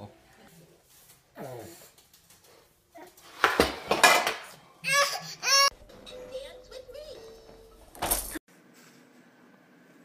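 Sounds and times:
metal pot and lids clattering: 3.7s - 4.5s.

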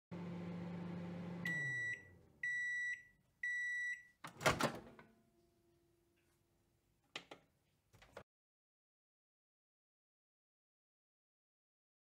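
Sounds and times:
microwave oven humming: 0.1s - 3.6s.

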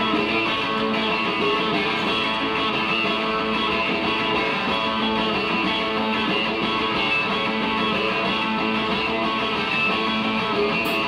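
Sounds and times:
guitar strumming ringing chords: 0.0s - 11.0s.

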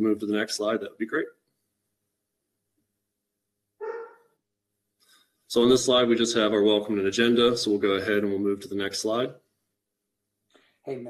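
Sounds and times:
dog barking faintly: 3.8s - 4.2s.

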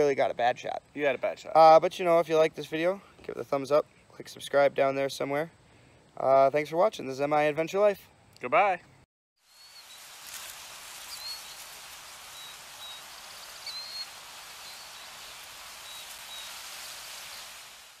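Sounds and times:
steady outdoor hiss: 0.0s - 18.0s
high bird chirps: 11.0s - 16.6s.

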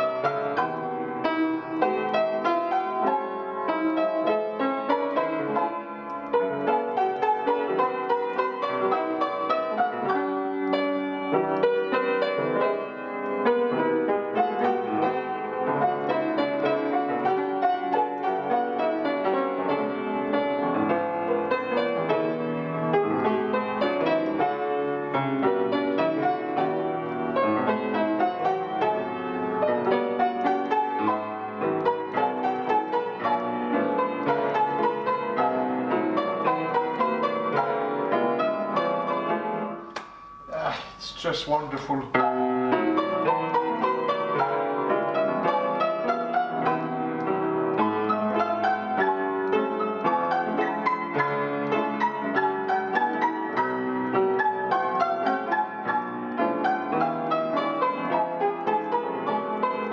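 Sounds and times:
solo classical piano: 0.0s - 59.9s.

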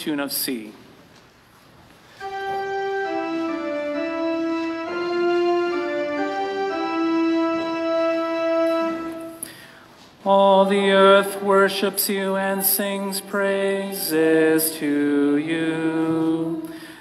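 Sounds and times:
church organ playing chords: 2.2s - 9.5s.

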